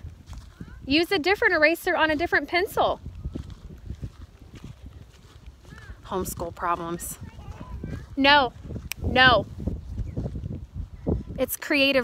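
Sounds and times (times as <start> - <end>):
footsteps with dull thumps: 0.0 - 12.0.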